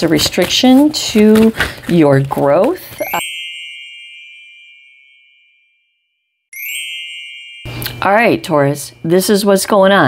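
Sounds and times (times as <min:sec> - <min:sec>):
high bell-like chime: 0:03.0 - 0:08.5.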